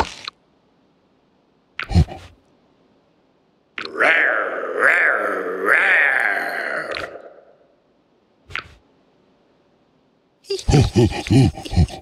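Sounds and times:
cartoon animal roar: 0:03.8 - 0:07.8.

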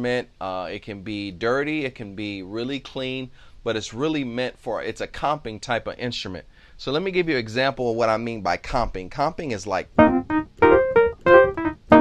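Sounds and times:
electric piano chord stabs: 0:10.0 - 0:12.0.

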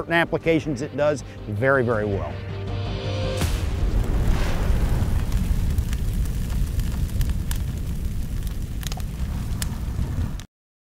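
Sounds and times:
fire rumbling and crackling: 0:03.4 - 0:10.5.

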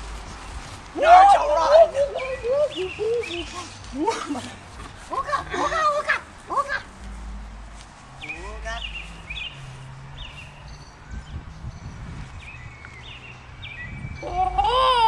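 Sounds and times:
voices: 0:00.9 - 0:07.0
small birds chirping: 0:01.6 - 0:04.6, 0:08.1 - 0:14.3
wind rumble on microphone: 0:07.5 - 0:14.8.

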